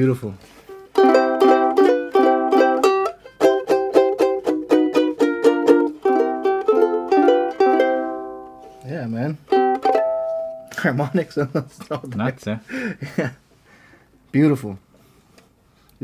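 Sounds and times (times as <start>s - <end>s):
ukulele strummed and plucked: 0.7s - 11.2s.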